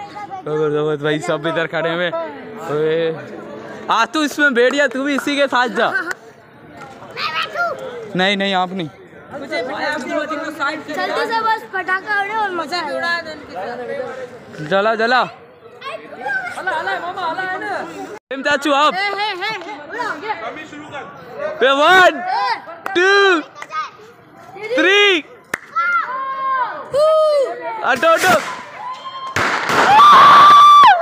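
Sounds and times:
men talking over one another: 0.0s - 25.5s.

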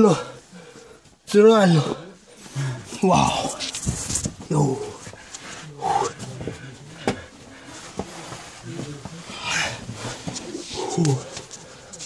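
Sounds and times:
person breathing: 0.2s - 1.2s, 1.8s - 3.0s, 4.9s - 12.0s
short grunts: 4.4s - 7.6s.

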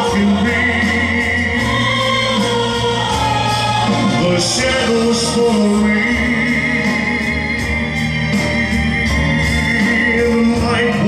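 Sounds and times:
live band playing: 0.0s - 11.0s
voices singing long held notes: 0.0s - 11.0s.

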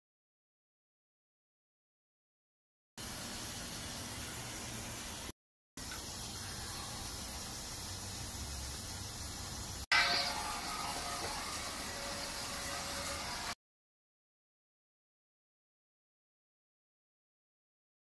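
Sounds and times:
fog machine hissing: 3.0s - 13.6s.

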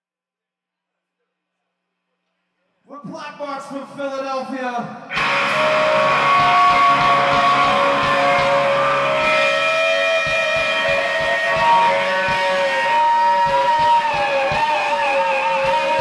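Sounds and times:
electric guitars droning: 5.1s - 16.0s
steady drum beat: 5.1s - 16.0s.

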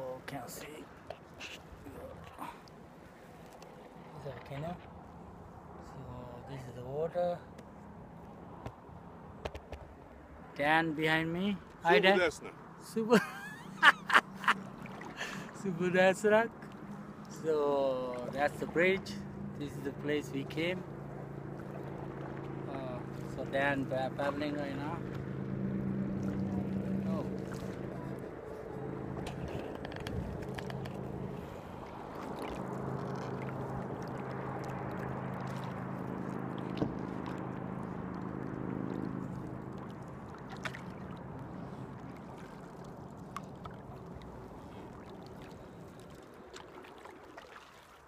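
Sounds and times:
water from canoe paddling: 0.0s - 6.8s, 13.5s - 48.0s
low engine-like hum: 0.0s - 47.5s
wind noise on microphone: 29.3s - 30.8s.

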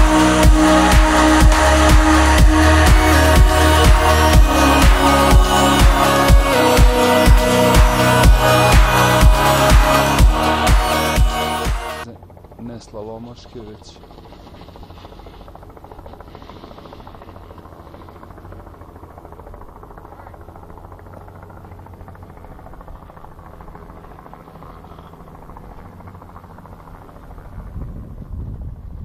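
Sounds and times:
engine humming: 0.0s - 28.4s.

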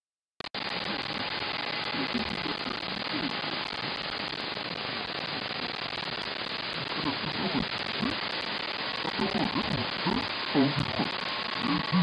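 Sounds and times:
faint digital signal tones: 0.4s - 12.0s
radio static hiss: 0.4s - 12.0s.

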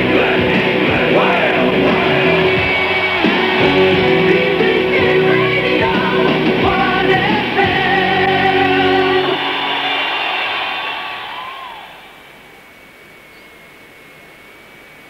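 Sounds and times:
rock music with singing on radio: 0.0s - 12.2s.

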